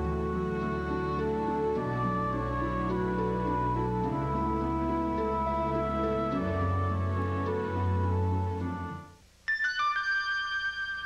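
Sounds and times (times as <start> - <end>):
theme music: 0.0 - 9.1.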